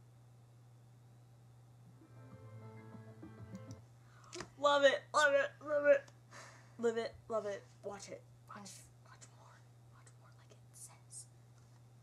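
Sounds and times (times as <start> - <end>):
low electrical hum: 0.0 - 12.0
faint whispering: 8.5 - 11.4.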